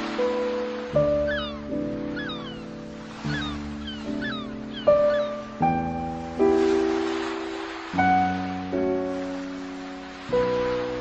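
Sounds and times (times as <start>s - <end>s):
slow piano chords: 0.0s - 11.0s.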